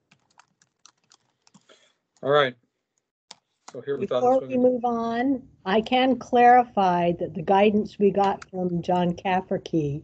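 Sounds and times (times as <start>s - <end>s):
computer keyboard typing: 0.0s - 1.7s.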